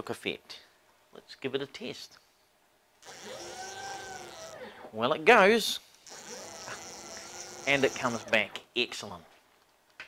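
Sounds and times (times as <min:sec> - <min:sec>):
stepper motor whine: 0:03.0 - 0:04.6, 0:06.0 - 0:08.5.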